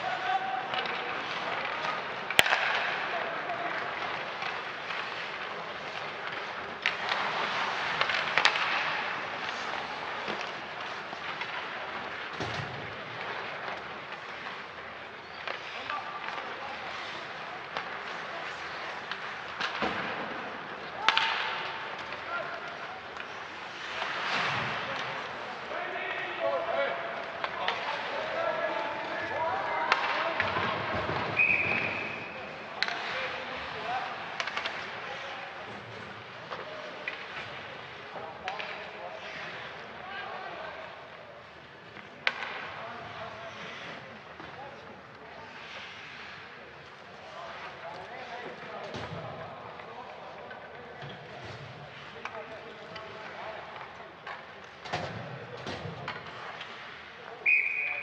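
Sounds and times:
skates on ice: 0.0s - 58.0s
referee's whistle: 31.4s - 32.2s, 57.4s - 58.0s.

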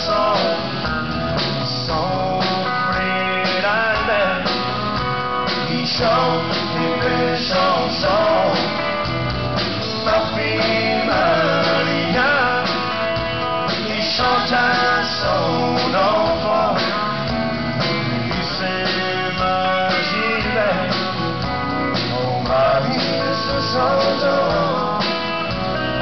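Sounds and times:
live country band music: 0.0s - 26.0s.

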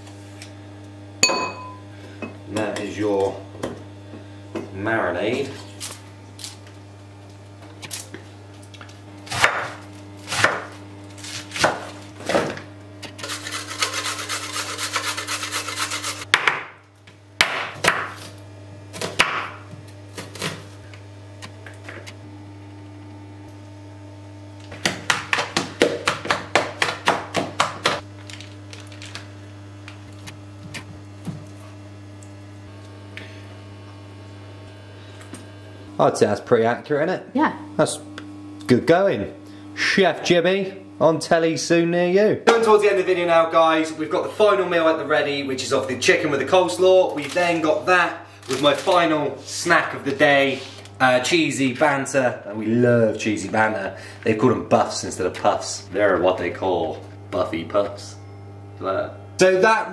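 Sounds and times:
steady low hum: 0.0s - 59.9s
knife chopping vegetables: 9.3s - 12.0s, 24.7s - 28.0s.

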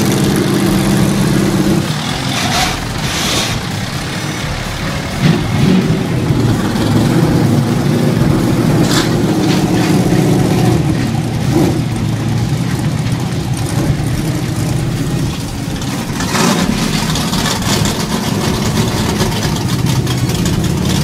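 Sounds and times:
race car engines running: 0.0s - 21.0s.

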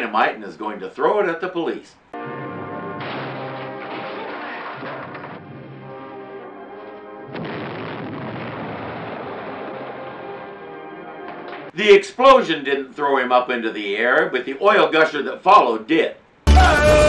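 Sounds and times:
dramatic orchestral music: 2.2s - 7.4s
dynamite explosion: 2.5s - 11.7s.

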